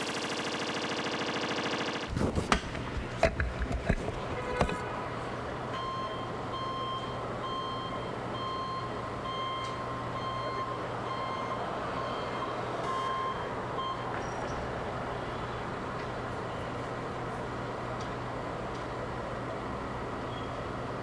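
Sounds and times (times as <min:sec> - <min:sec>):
street noise: 0:02.1 - 0:21.0
vehicle reversing beeper: 0:05.7 - 0:14.6.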